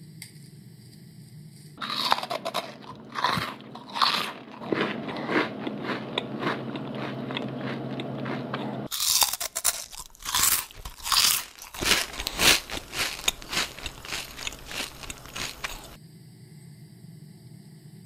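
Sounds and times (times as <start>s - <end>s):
electrical hum: 0.0s - 18.0s
crunching and chewing snacks: 1.8s - 16.0s.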